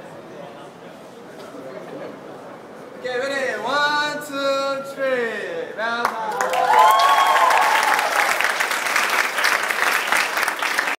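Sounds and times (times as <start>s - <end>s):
hands clapping in applause: 6.0s - 11.0s
people cheering: 6.2s - 11.0s.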